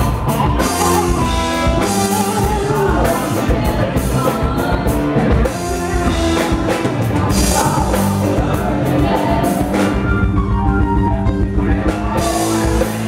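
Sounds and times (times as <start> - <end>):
person singing: 0.0 - 10.2
rock band playing: 0.0 - 13.0.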